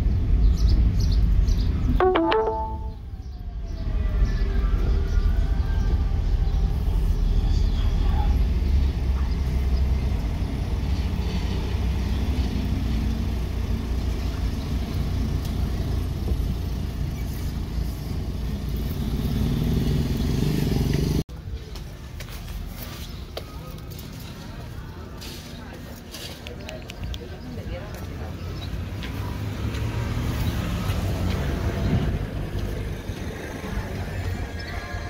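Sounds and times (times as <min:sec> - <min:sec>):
road noise: 0:00.0 - 0:35.0
street sound: 0:00.0 - 0:35.0
footsteps on pavement: 0:20.9 - 0:31.7.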